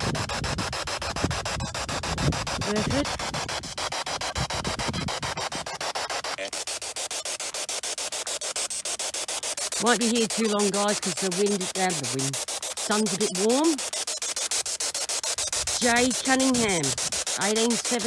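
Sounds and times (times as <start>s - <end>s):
radio static hiss: 0.0s - 18.0s.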